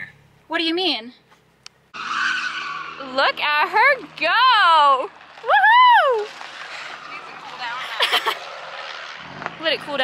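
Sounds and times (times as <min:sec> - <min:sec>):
car engine running: 0:01.4 - 0:10.0
tyres sliding on gravel: 0:02.1 - 0:10.0.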